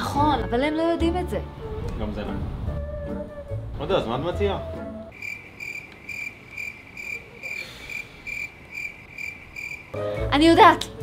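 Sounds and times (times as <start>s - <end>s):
cricket chirping: 5.1s - 10.0s.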